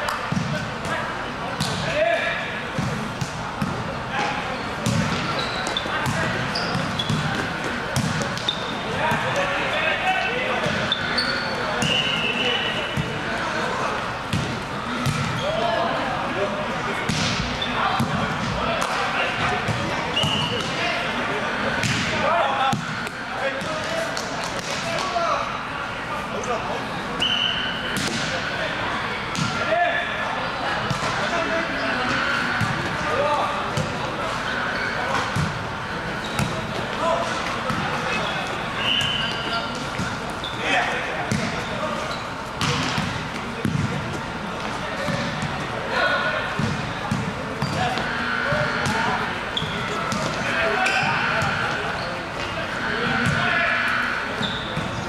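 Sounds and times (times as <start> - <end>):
players calling out: 24.8 - 55.0.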